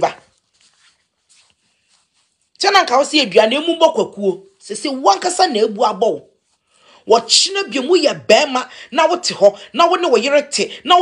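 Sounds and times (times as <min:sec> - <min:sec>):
person speaking: 0:00.0 - 0:11.0.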